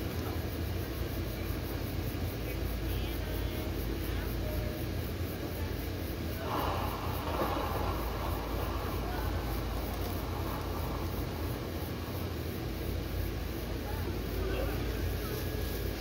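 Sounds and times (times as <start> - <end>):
faint voices: 0.0 - 16.0
low outdoor hum and rumble: 0.0 - 16.0.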